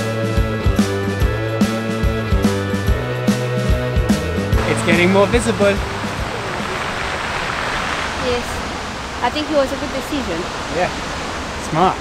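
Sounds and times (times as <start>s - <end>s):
sea surf breaking on beach: 4.6s - 12.0s.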